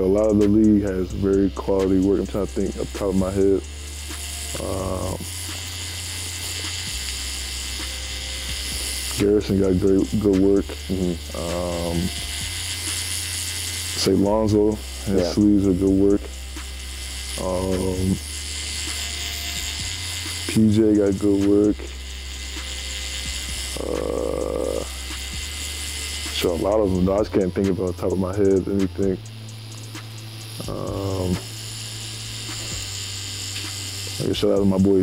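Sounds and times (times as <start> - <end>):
tattoo machine buzzing: 0.0 - 35.0.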